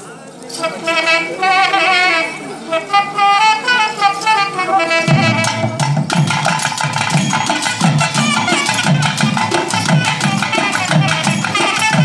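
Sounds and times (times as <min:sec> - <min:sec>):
double-reed wind instrument melody: 0:00.5 - 0:12.0
drums: 0:04.6 - 0:12.0.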